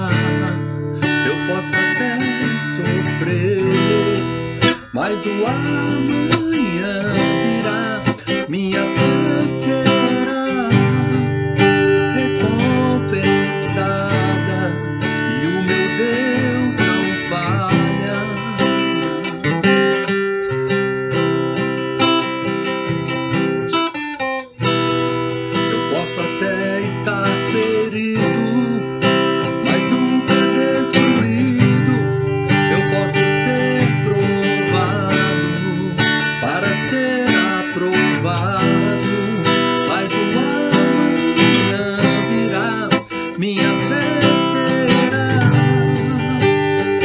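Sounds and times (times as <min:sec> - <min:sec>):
acoustic guitar strumming: 0:00.0 - 0:47.0.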